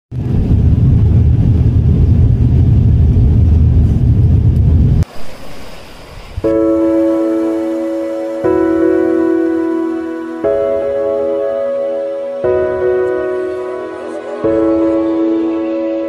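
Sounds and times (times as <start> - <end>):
aircraft cabin rumble: 0.1 - 6.8
background music with held notes: 6.4 - 16.0.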